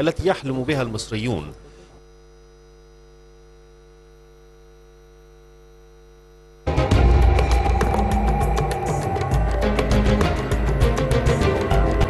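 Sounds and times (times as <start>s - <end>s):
electrical hum: 0.0s - 12.0s
loud music: 6.7s - 12.0s.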